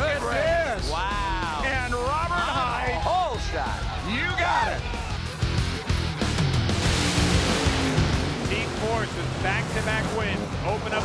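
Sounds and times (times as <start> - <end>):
rock music with bass line: 0.0 - 11.0
race car engine: 5.2 - 11.0.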